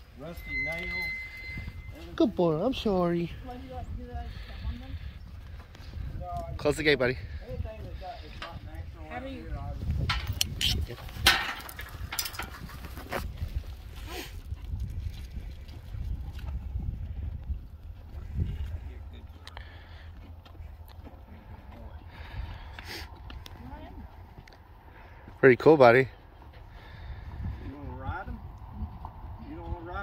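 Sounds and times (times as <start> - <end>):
wind rumble on microphone: 0.5 - 19.4, 20.6 - 24.7, 26.6 - 30.0
metal gate knocking and clanking: 11.2 - 12.5.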